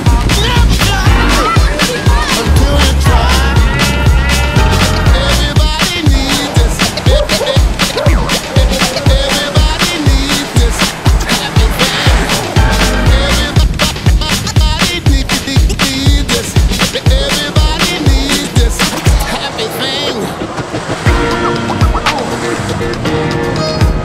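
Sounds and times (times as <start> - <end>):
fast beat music with heavy bass: 0.0 - 24.0.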